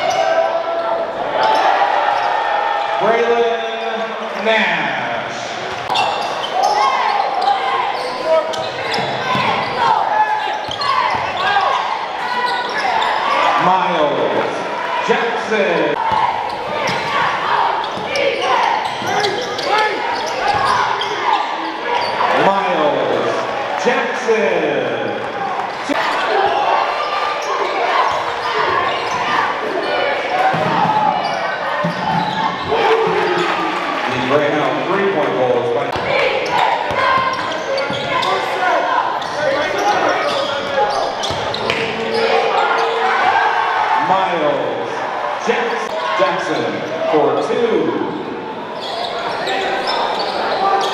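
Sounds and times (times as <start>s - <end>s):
spectators' voices and shouts: 0.0s - 50.9s.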